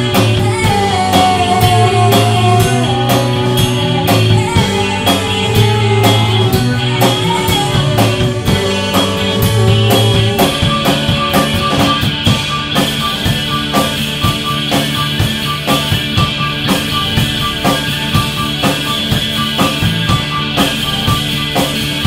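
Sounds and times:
bass line: 0:00.0 - 0:22.0
drum kit: 0:00.0 - 0:22.0
electric guitars: 0:00.0 - 0:22.0
keyboards: 0:00.0 - 0:22.0.

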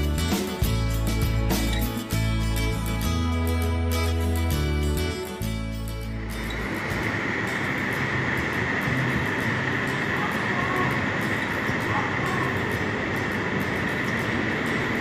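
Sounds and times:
background music: 0:00.0 - 0:15.0
wind tunnel airflow rushing: 0:06.3 - 0:15.0.

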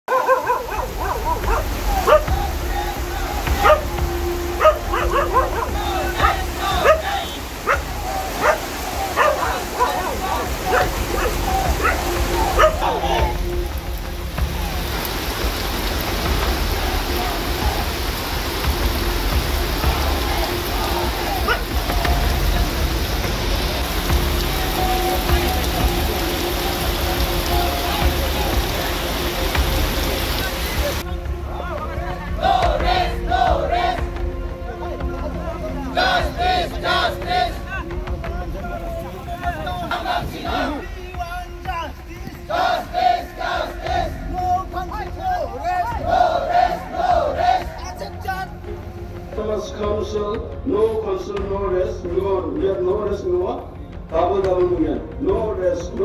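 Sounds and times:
heavy rain falling: 0:00.0 - 0:49.7.

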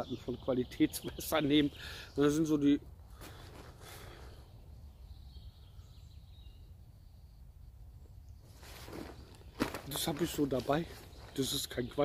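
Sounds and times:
clothing and backpack rustling: 0:08.5 - 0:11.6
man speaking: 0:09.9 - 0:12.0.

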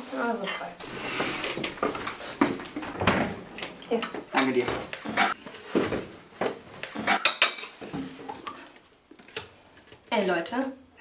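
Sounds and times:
cutlery and crockery clinking: 0:06.8 - 0:07.8.

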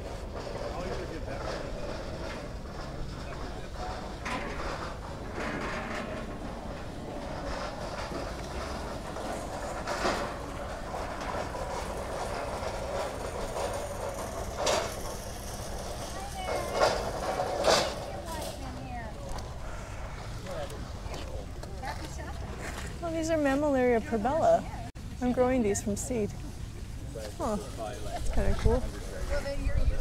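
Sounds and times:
steady low rumble: 0:00.0 - 0:16.2, 0:16.9 - 0:30.0
indistinct voices: 0:15.6 - 0:30.0.

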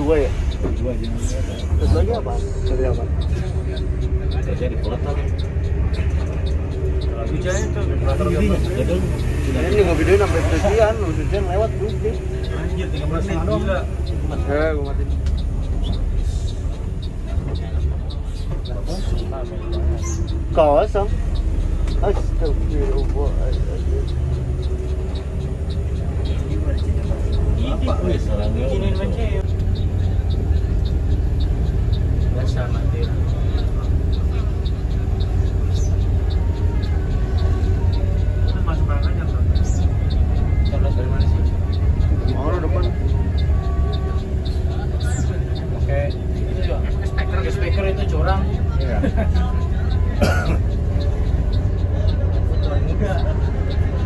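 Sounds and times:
bus engine rumble: 0:00.0 - 0:54.0
indistinct passenger voices: 0:00.0 - 0:54.0.

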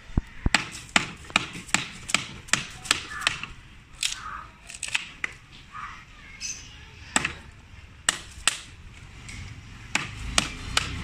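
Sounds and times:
chisel cracking hard wood: 0:00.5 - 0:05.4, 0:07.2 - 0:08.7, 0:09.9 - 0:11.0.

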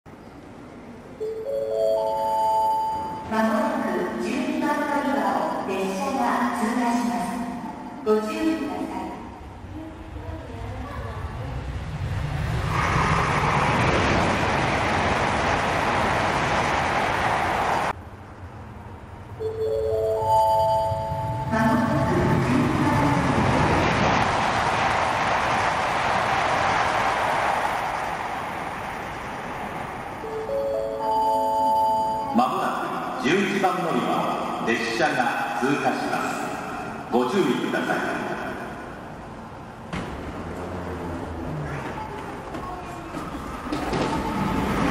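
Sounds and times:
high-speed train passing: 0:00.1 - 0:44.9
rising platform chime: 0:01.2 - 0:03.3, 0:19.4 - 0:22.4, 0:30.2 - 0:33.2
announcement over loudspeaker: 0:01.2 - 0:09.5, 0:19.4 - 0:23.8, 0:30.2 - 0:39.0.

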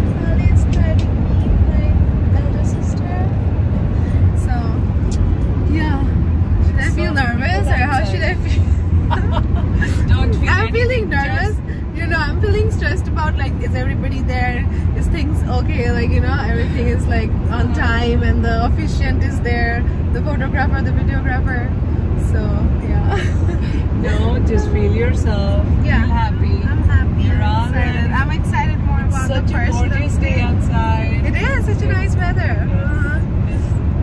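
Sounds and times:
women talking: 0:00.0 - 0:03.4, 0:04.4 - 0:04.9, 0:05.7 - 0:33.6
car cabin road and engine rumble: 0:00.0 - 0:34.0.

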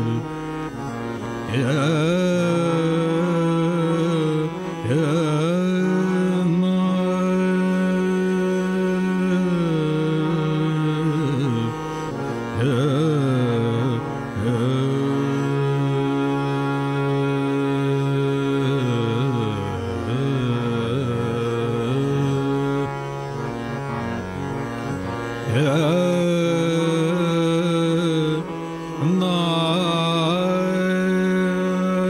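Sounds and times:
man singing classical vocals: 0:00.0 - 0:32.0.

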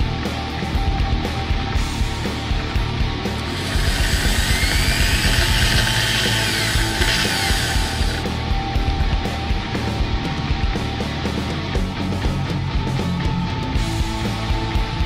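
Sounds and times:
rock music: 0:00.0 - 0:15.0
electric drill spinning: 0:03.4 - 0:08.3.

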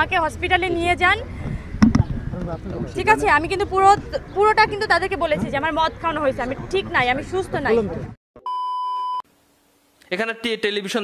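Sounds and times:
high electronic beep: 0:08.4 - 0:09.2.

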